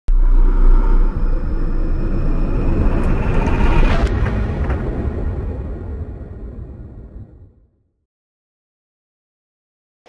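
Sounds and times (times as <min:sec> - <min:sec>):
deep rumble: 0:00.1 - 0:08.0.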